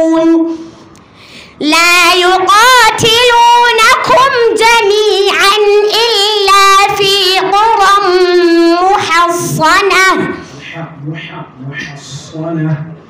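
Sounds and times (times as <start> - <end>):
girl chanting recitation: 0.0 - 0.7, 1.6 - 10.5
breath: 0.5 - 1.6, 10.4 - 10.8.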